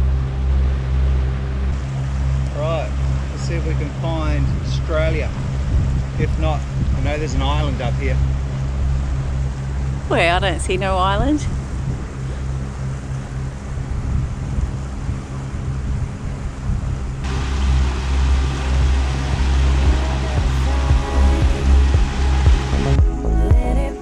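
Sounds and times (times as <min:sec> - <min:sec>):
wind and water noise: 0:00.0 - 0:23.1
boat engine droning: 0:00.0 - 0:24.0
background music: 0:17.2 - 0:24.0.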